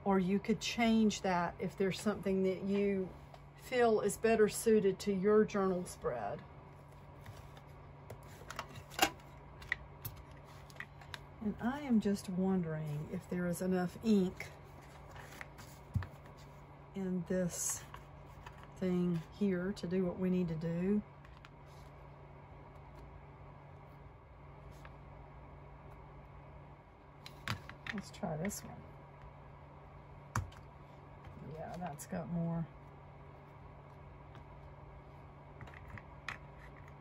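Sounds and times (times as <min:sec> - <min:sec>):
faint steady hum: 0:00.0 - 0:37.0.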